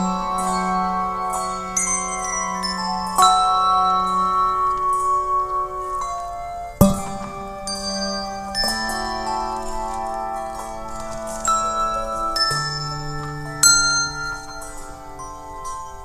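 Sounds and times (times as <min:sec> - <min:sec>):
handbell chords ringing: 0:00.0 - 0:16.0.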